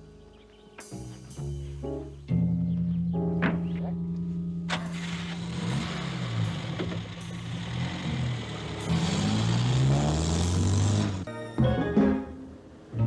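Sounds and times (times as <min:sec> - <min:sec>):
car engine revving: 0:04.7 - 0:11.3.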